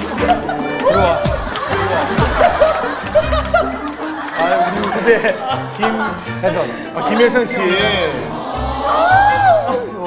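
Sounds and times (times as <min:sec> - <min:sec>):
background music: 0:00.0 - 0:10.0
people laughing: 0:00.0 - 0:10.0.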